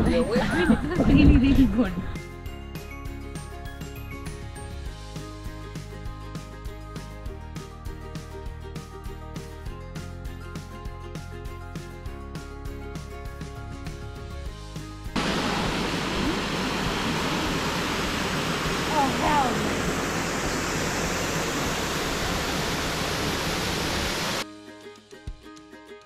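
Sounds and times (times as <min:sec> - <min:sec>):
background music: 0:00.0 - 0:16.1, 0:24.4 - 0:26.0
waterfall rushing over rocks: 0:15.2 - 0:24.4.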